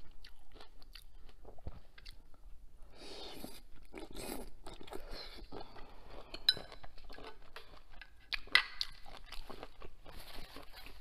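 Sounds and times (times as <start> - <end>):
chewing crunchy shrimp: 0.0 - 2.4, 3.2 - 11.0.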